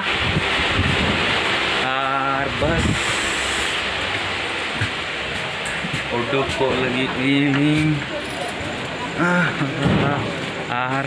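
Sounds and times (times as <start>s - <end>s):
rushing noise inside train coach: 0.0s - 11.0s.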